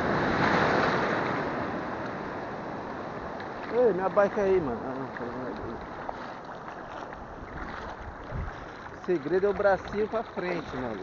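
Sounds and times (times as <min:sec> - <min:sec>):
sea surf washing: 0:00.0 - 0:11.0
wind buffeting microphone: 0:03.8 - 0:11.0.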